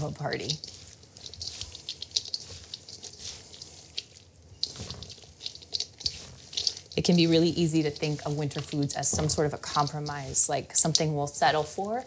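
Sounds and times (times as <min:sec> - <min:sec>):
crisp crackles of vegetables: 0:00.0 - 0:12.0
wet squelches of salad tossing: 0:00.0 - 0:12.0.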